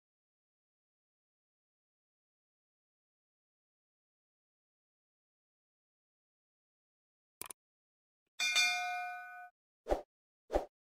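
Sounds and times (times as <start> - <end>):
notification bell ding: 8.4 - 9.5.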